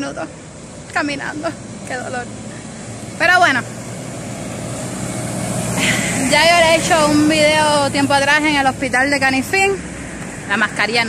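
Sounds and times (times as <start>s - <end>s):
faint engine hum: 0.0s - 11.0s
vehicle passing on street: 0.0s - 11.0s.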